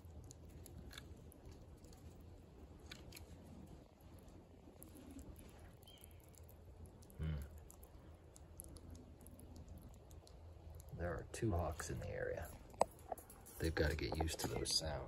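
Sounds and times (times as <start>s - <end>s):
low steady hum: 0.0s - 15.0s
squirrel chewing food: 0.0s - 15.0s.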